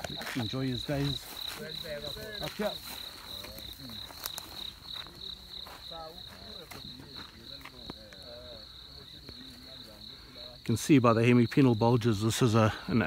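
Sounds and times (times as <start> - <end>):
crickets chirping: 0.0 - 13.0
faint voices talking: 0.0 - 13.0.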